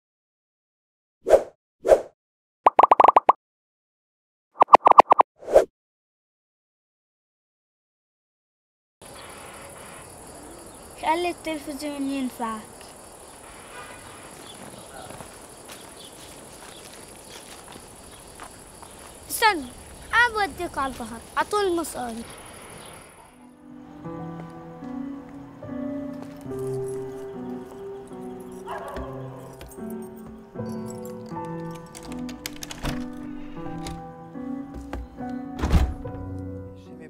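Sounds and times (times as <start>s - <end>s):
faint distant calls: 9.0s - 24.4s
insects buzzing: 9.0s - 32.3s
light steps on dry ground: 14.4s - 20.1s.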